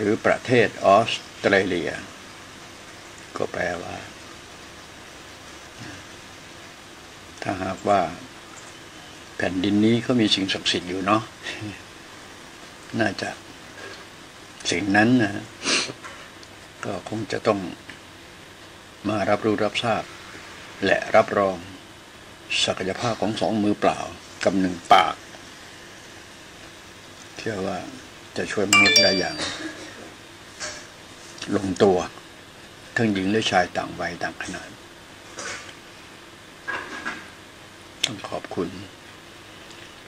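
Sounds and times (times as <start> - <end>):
background hiss: 14.4 - 16.0.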